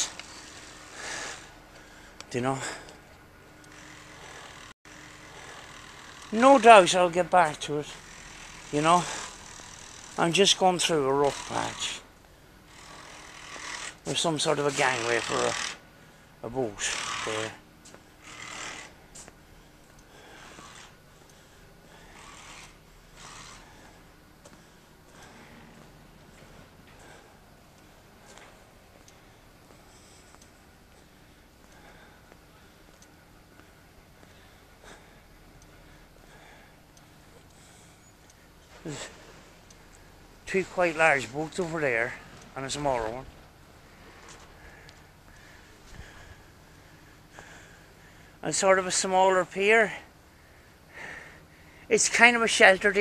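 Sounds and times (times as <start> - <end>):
low background noise: 0.0 - 53.0
person breathing: 19.5 - 39.5, 43.8 - 48.4, 50.3 - 51.9.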